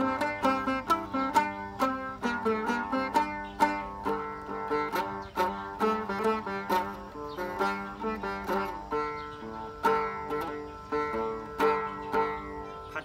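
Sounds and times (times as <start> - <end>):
plucked lute melody: 0.0 - 13.0.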